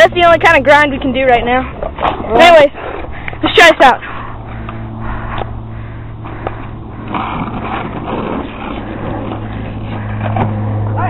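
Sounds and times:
low hum: 0:00.0 - 0:11.0
skateboard wheels rolling on asphalt: 0:06.2 - 0:11.0.

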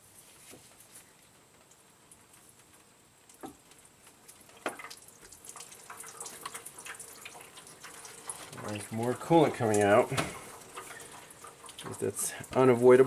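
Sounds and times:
coolant dripping into a drain pan: 0:03.3 - 0:13.0.

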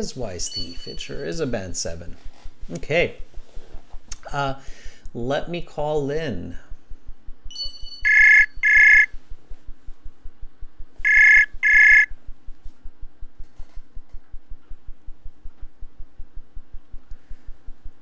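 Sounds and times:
outgoing call ringing tone: 0:00.4 - 0:01.5, 0:07.5 - 0:09.1, 0:11.1 - 0:12.1.

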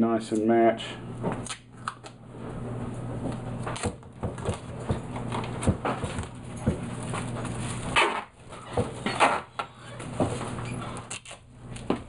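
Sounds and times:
duct tape ripping off roll: 0:07.8 - 0:08.3, 0:11.1 - 0:11.5.

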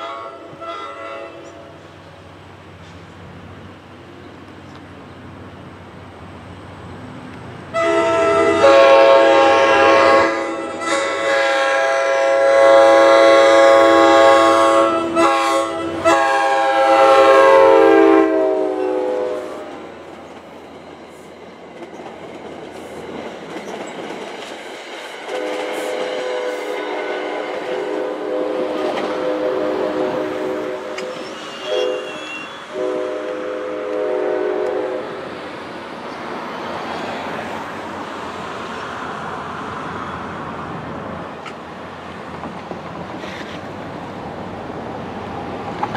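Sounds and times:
locomotive air horn blowing: 0:00.0 - 0:01.7, 0:07.7 - 0:19.8, 0:25.3 - 0:35.2
clickety-clack of train coaches: 0:00.0 - 0:45.9.

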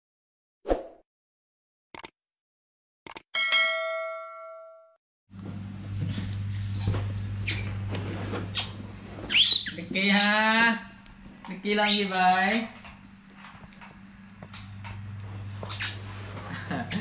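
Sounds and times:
bell-like notification ding: 0:03.4 - 0:05.0
baby monkey squealing: 0:09.3 - 0:10.4.

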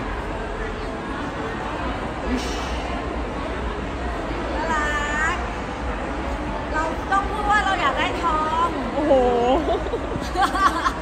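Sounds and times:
indoor crowd murmur: 0:00.0 - 0:11.0.

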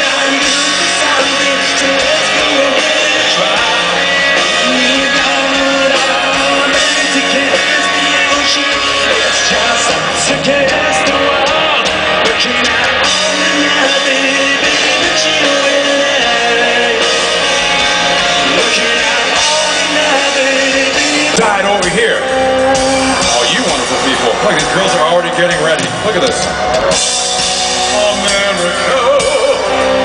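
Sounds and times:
person singing lead vocal: 0:00.0 - 0:25.3, 0:27.3 - 0:30.0
live rock band playing: 0:00.0 - 0:30.0.

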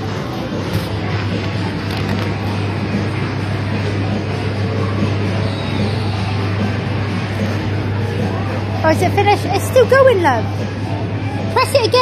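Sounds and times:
kiddie ride music: 0:00.0 - 0:12.0.

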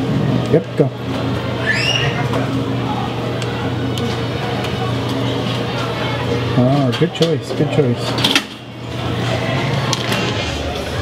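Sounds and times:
vending machine hum: 0:00.0 - 0:11.0.

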